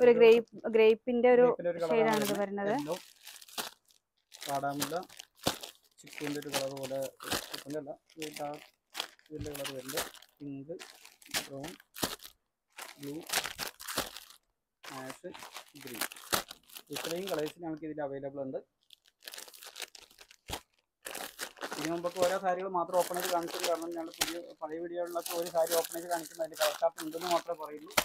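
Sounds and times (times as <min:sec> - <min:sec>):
person speaking: 0:00.0 - 0:03.0, 0:04.4 - 0:05.1, 0:06.0 - 0:08.6, 0:09.3 - 0:11.8, 0:12.9 - 0:13.3, 0:14.8 - 0:16.1, 0:16.8 - 0:18.4, 0:21.7 - 0:28.0
plastic wrapping crinkling: 0:01.8 - 0:17.7, 0:18.8 - 0:28.0.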